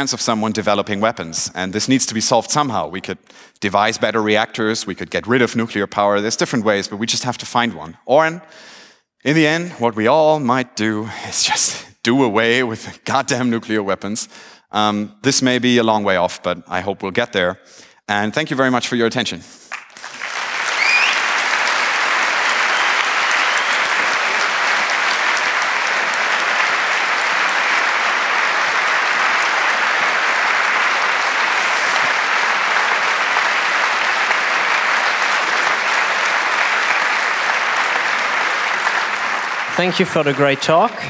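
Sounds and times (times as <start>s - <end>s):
audience applauding: 19.7s - 41.0s
short rising whistle: 20.8s - 21.2s.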